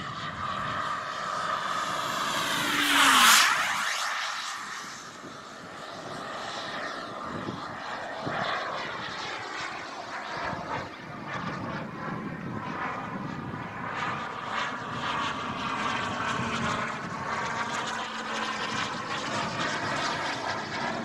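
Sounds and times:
model jet turbine whining past: 0:00.0 - 0:21.0.

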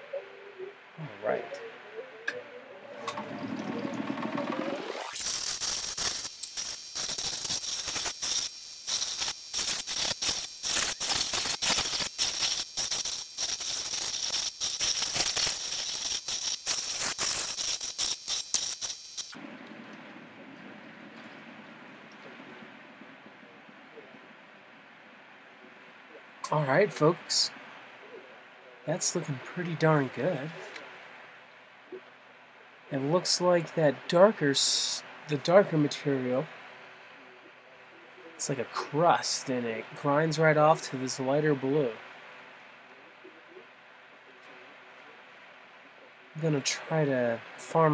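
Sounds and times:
machine running: 0:02.3 - 0:23.9.

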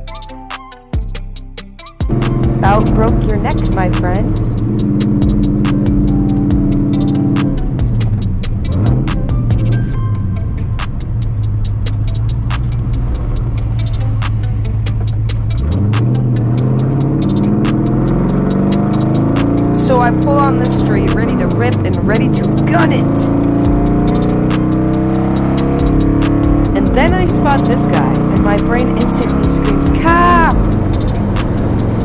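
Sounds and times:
music with vocals and beat: 0:00.0 - 0:10.0, 0:10.8 - 0:32.0
car engine accelerating: 0:02.0 - 0:32.0.

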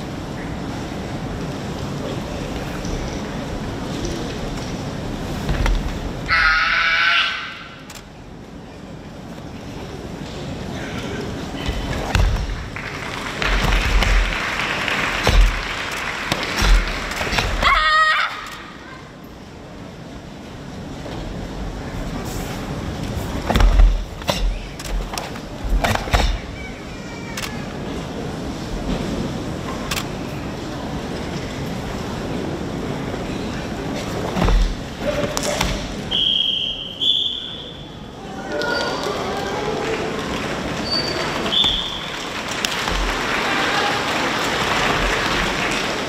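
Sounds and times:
murmur of large hall: 0:00.0 - 0:46.0
high shout: 0:06.2 - 0:07.8, 0:17.6 - 0:19.0
karate uniform snapping: 0:13.5 - 0:17.8.

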